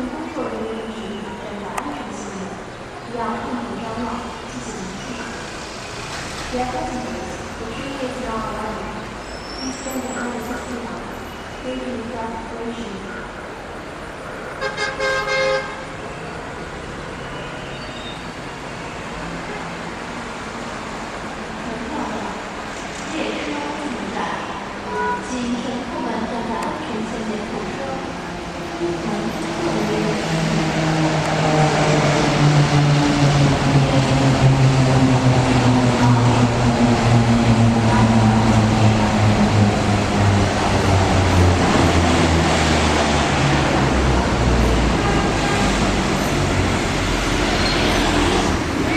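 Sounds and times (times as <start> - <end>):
train horn blast: 44.9 - 46.0.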